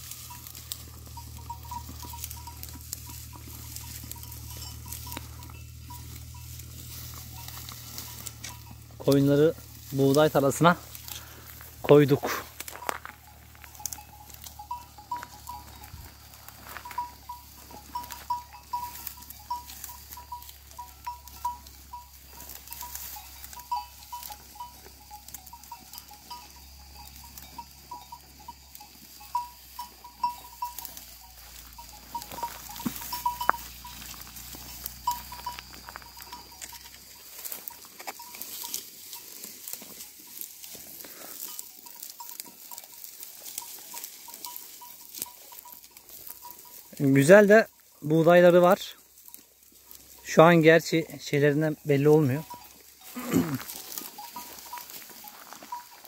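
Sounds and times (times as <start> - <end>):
sheep bells clinking: 0.0 - 56.0
wheat stalks crackling and rustling: 0.0 - 56.0.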